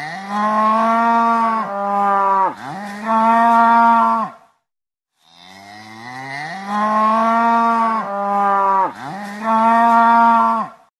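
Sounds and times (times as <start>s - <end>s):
cow mooing: 0.0s - 4.4s, 5.2s - 10.8s.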